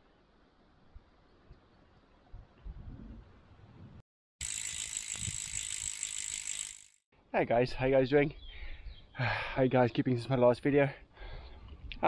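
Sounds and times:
bicycle freehub ratchet clicking: 0:04.4 - 0:07.0.

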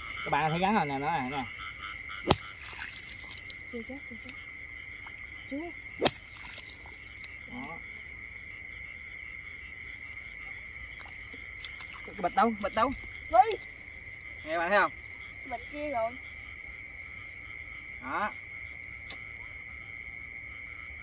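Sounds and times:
faint rising frog calls: 0:00.0 - 0:21.0
frogs and insects trilling: 0:00.0 - 0:21.0.

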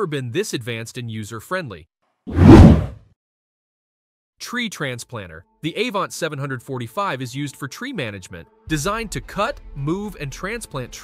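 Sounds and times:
whoosh sound effect: 0:02.3 - 0:03.0.

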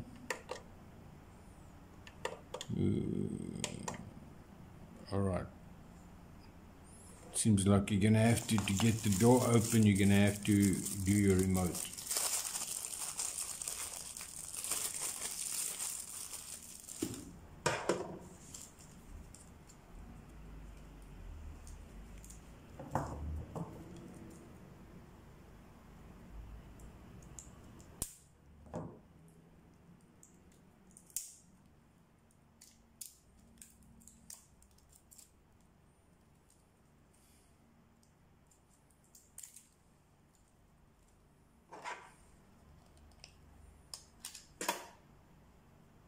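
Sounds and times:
plastic packaging crinkling: 0:08.1 - 0:17.4, 0:18.3 - 0:19.5, 0:32.6 - 0:35.4, 0:39.1 - 0:39.8.

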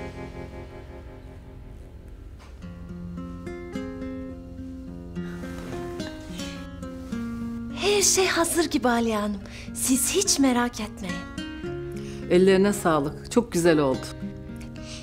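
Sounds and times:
sustained chord: 0:00.0 - 0:02.4
slow melody of held notes: 0:00.0 - 0:07.8.

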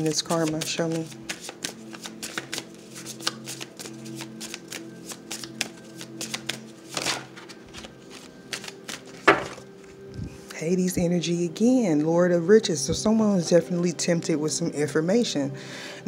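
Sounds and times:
cards being shuffled: 0:00.0 - 0:10.6
quiet background music: 0:00.0 - 0:16.0.

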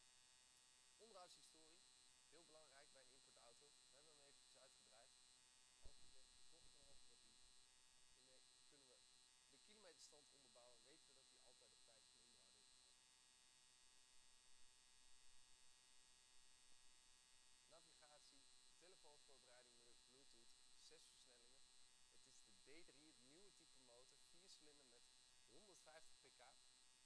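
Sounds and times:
electrical hum with whine: 0:00.9 - 0:27.0
faint speech: 0:01.0 - 0:05.1, 0:05.8 - 0:07.4, 0:08.2 - 0:12.6, 0:17.7 - 0:26.6.

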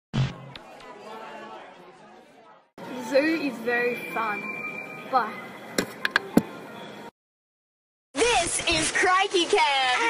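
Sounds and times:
background voices and chatter: 0:00.3 - 0:07.1.

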